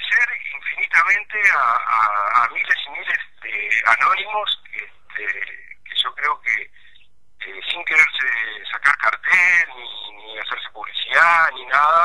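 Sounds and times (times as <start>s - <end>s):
man talking over telephone: 0.0s - 12.0s.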